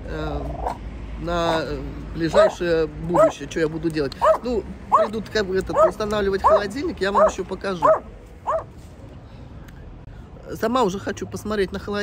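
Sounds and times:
small dog yipping: 0.5s - 0.8s, 2.3s - 2.6s, 3.2s - 3.4s, 4.2s - 8.7s.

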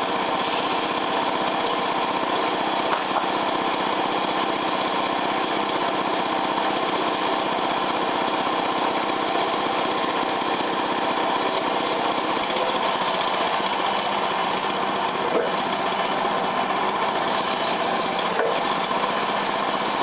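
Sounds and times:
small gasoline engine running: 0.0s - 20.0s.

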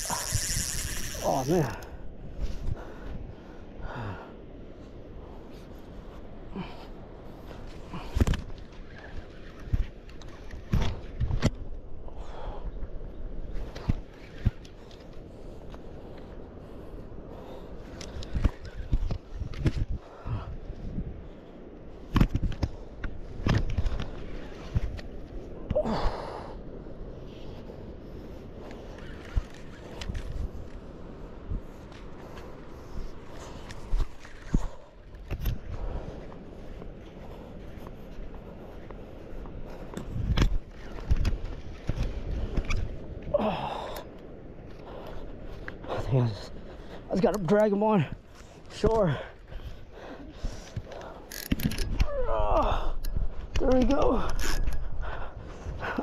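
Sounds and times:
fishing reel cranking: 0.0s - 1.9s, 51.3s - 51.9s.

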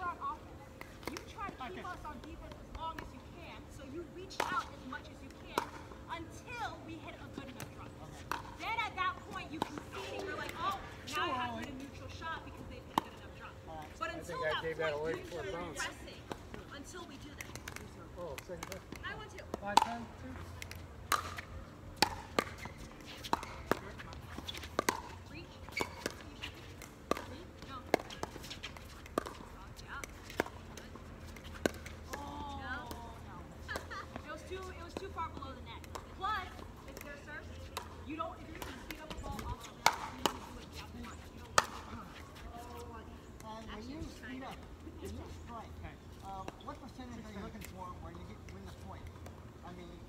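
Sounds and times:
faint players' voices: 0.0s - 50.0s.

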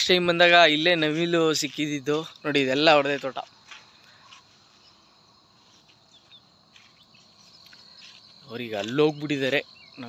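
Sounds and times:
man speaking: 0.0s - 3.5s, 8.4s - 10.0s
insects chirring: 0.0s - 10.0s.

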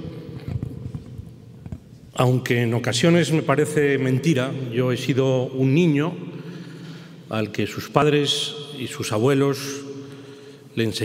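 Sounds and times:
person speaking in reverberant hall: 0.0s - 11.0s.

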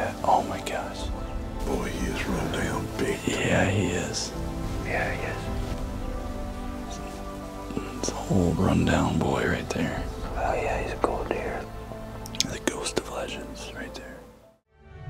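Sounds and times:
background music held tones: 0.0s - 15.0s.

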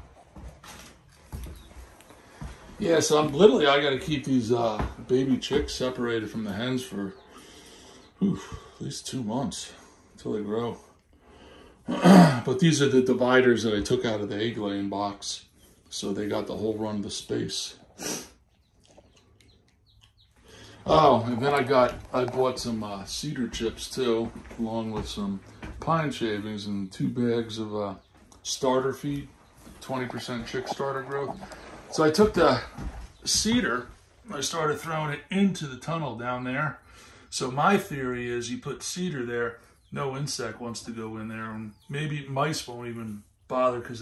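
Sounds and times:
baby chicks peeping: 1.2s - 9.2s, 12.7s - 35.3s, 39.1s - 43.9s
breathy sound: 20.4s - 20.9s.

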